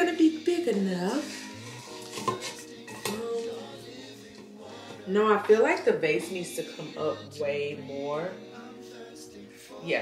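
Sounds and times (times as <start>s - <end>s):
grass stems scraping a vase: 1.0s - 3.5s.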